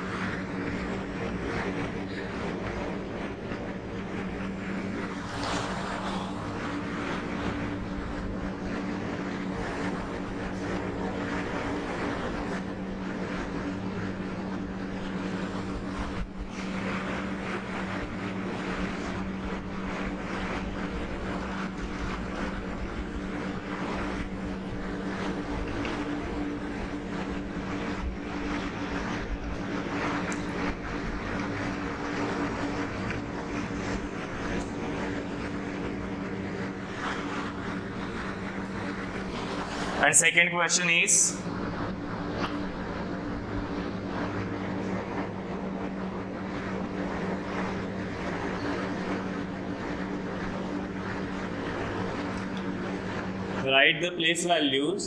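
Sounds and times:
steady mechanical hum: 0:00.0 - 0:55.0.

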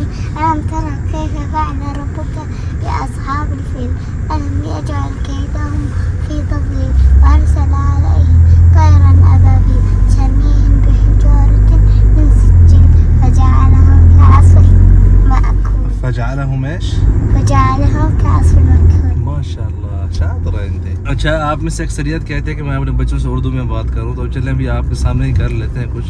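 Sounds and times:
car cabin rumble: 0:00.0 - 0:26.0.

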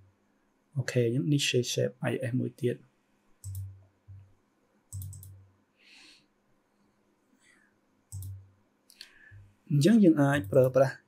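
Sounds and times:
computer mouse clicking: 0:03.4 - 0:04.3, 0:04.9 - 0:05.5, 0:08.1 - 0:09.2.

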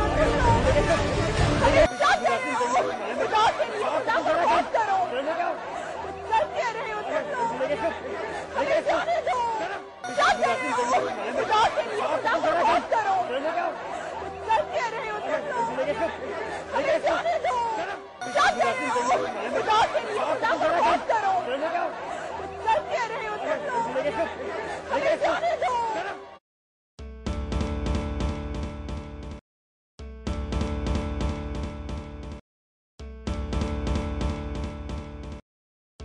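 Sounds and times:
crowd talking and shouting: 0:00.0 - 0:26.4.

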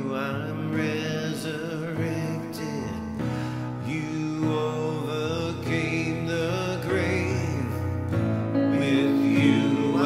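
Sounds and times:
instrumental accompaniment: 0:07.4 - 0:10.0
person singing long held notes: 0:08.5 - 0:10.0.

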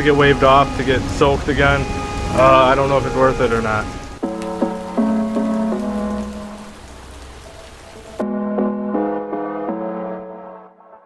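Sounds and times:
rain falling: 0:00.0 - 0:09.2
keyboard notes: 0:00.0 - 0:11.0.

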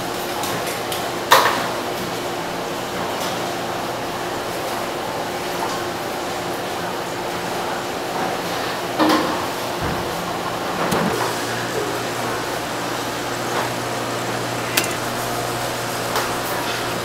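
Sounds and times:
sharp click: 0:14.7 - 0:15.0.

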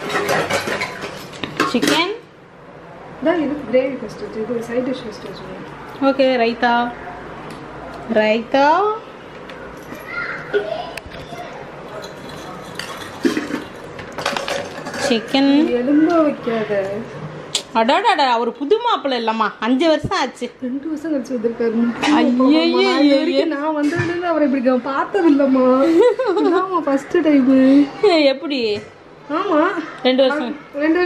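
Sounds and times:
dishes clattering on stone counter: 0:00.0 - 0:02.2, 0:11.8 - 0:15.6.

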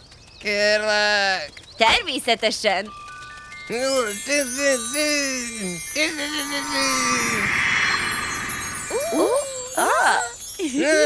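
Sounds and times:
magic wand spell effect: 0:04.1 - 0:10.2.

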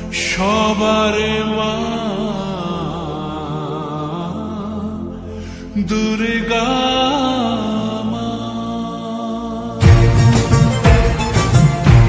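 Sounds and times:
person chanting: 0:00.0 - 0:10.0
low drone: 0:00.0 - 0:12.0.

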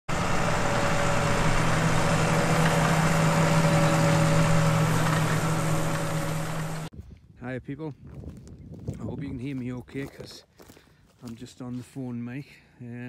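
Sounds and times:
tractor engine running: 0:00.1 - 0:06.9.

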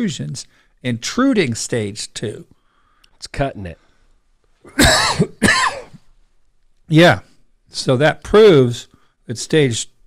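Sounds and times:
man coughing: 0:04.6 - 0:06.1.

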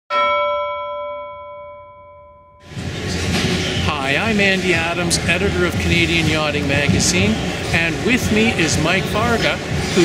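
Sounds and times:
metallic bell chime: 0:00.1 - 0:02.7.

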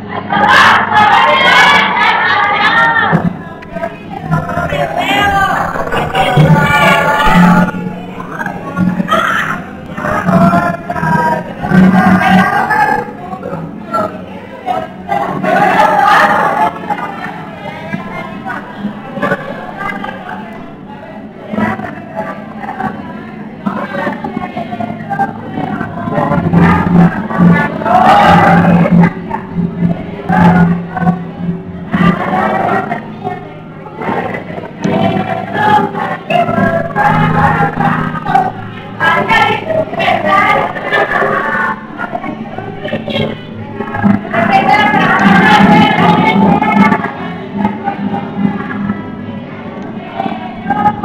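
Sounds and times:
group of people singing: 0:00.0 - 0:51.0
acoustic guitar: 0:00.2 - 0:51.0.

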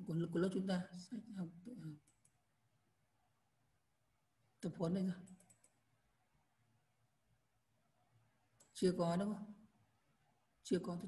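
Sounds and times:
computer mouse clicks: 0:02.0 - 0:02.4, 0:05.2 - 0:05.9, 0:08.6 - 0:08.8.

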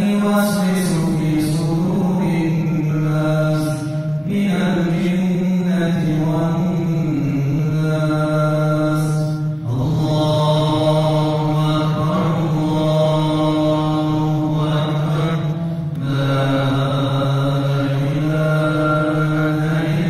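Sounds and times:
man chanting into microphone: 0:00.0 - 0:20.0.

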